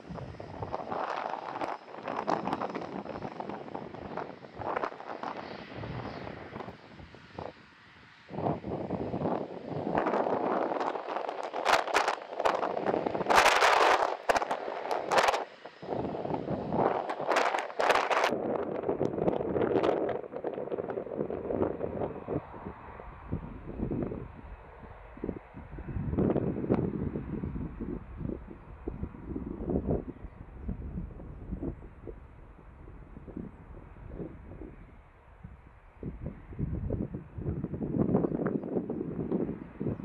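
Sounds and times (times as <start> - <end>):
jet blast buffeting microphone: 0.0 - 40.0
jet engines running: 0.0 - 40.0.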